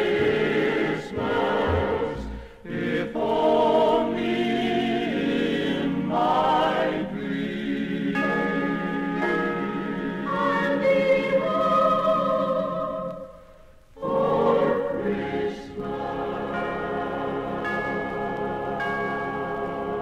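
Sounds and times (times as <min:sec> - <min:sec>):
choir singing with orchestra: 0:00.0 - 0:13.4, 0:14.0 - 0:20.0.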